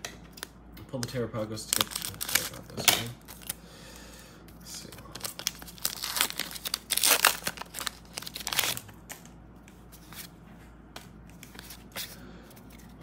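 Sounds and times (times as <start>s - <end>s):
foil wrapper tearing and crinkling: 1.6s - 3.6s, 4.8s - 9.0s.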